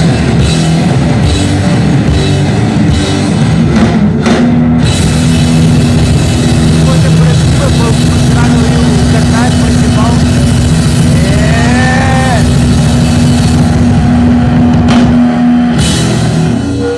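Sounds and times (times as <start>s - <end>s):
distorted amplifier drone: 0.0s - 16.9s
voices shouting: 11.2s - 12.5s.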